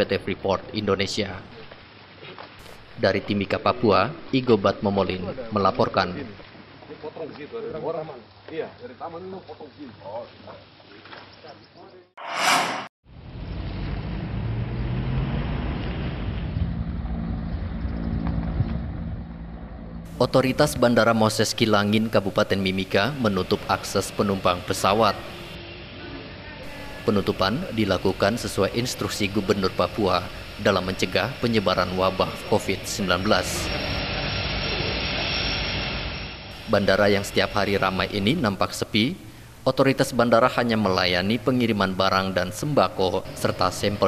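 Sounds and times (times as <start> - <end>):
propeller aircraft engine: 33.7 - 36.6.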